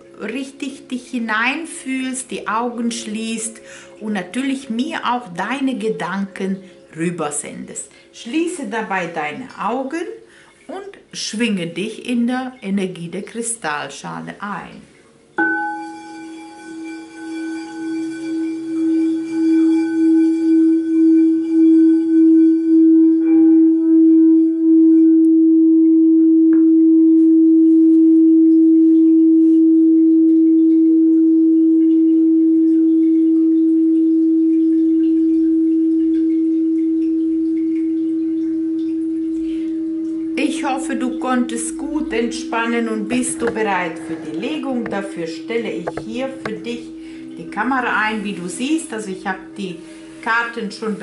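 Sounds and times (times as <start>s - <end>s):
crystal singing bowl: 0.0s - 10.1s, 15.4s - 51.0s.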